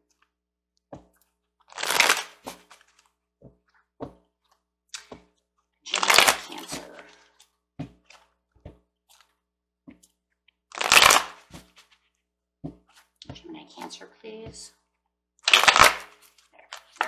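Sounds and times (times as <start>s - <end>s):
cards being shuffled: 1.7s - 3.1s, 5.9s - 7.1s, 10.7s - 12.1s, 15.5s - 17.0s.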